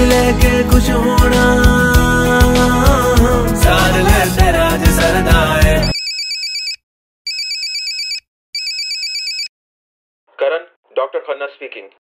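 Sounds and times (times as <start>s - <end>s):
pop song with a beat: 0.0s - 6.0s
smartphone ringtone trill: 5.8s - 9.5s.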